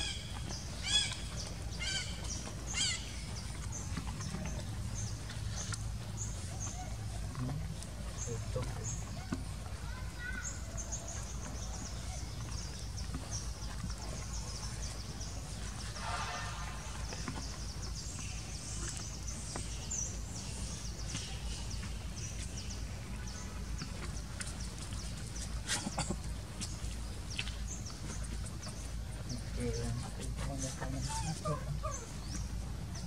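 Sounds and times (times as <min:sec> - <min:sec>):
steady low rumble: 0:00.0 - 0:33.0.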